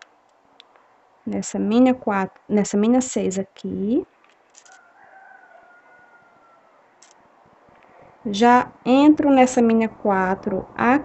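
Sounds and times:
distant animal call: 4.8 - 7.0.

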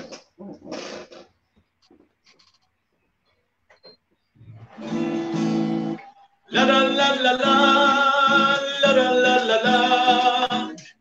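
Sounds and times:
acoustic guitar chord strummed: 4.8 - 10.8.

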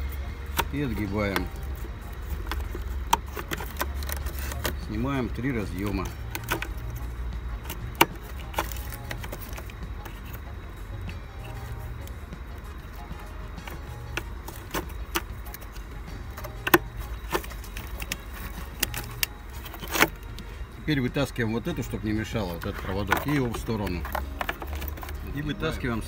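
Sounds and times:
steady low hum: 0.0 - 26.0
plastic connector latches clicking: 0.4 - 4.8, 5.8 - 7.0, 7.6 - 10.4, 16.4 - 20.4.

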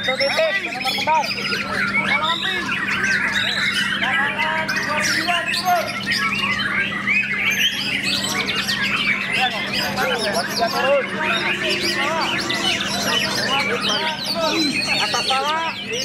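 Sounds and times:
songbird singing whistles and trills: 0.0 - 15.0
caged songbirds singing: 0.0 - 16.0
steady low hum: 0.0 - 16.0.

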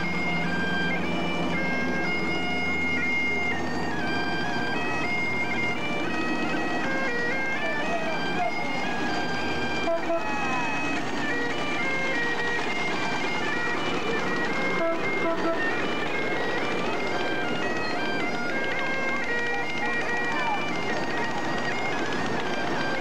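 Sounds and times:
bagpipes playing a tune: 0.0 - 23.0
passing vehicles: 0.0 - 23.0
crowd chatter: 1.8 - 23.0.

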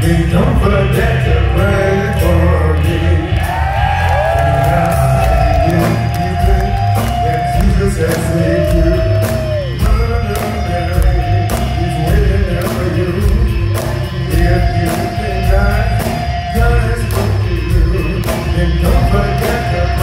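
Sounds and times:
live rock band playing: 0.0 - 20.0
swooping held guitar notes: 0.1 - 20.0.

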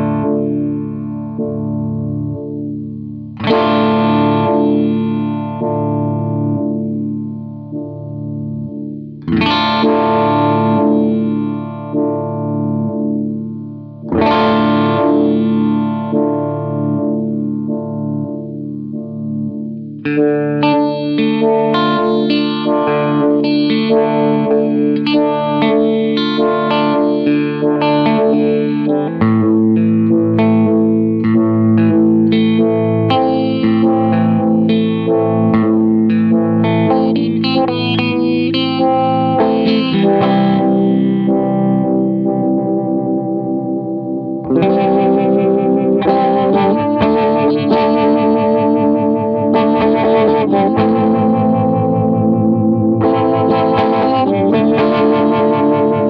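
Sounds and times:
electric guitar with vibrato wobble: 0.0 - 56.0.

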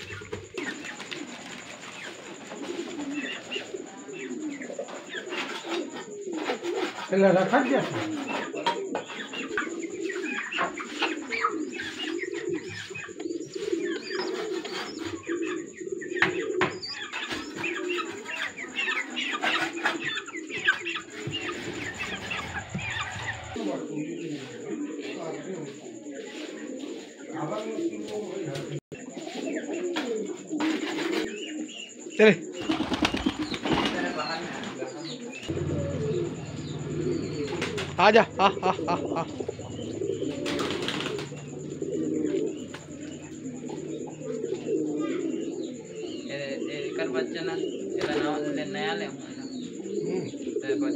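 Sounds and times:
pigeons cooing: 0.0 - 50.9.

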